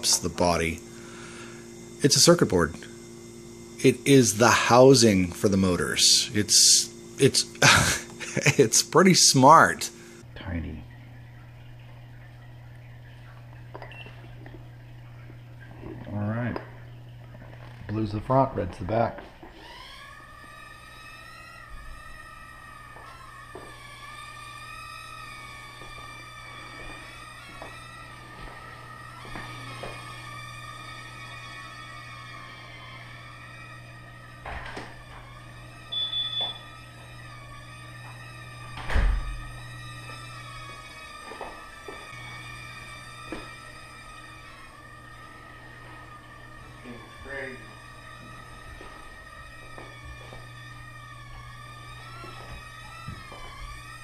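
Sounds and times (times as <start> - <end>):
quadcopter propellers whining: 0.0 - 10.3, 19.2 - 54.0
brief high beep: 35.9 - 36.6.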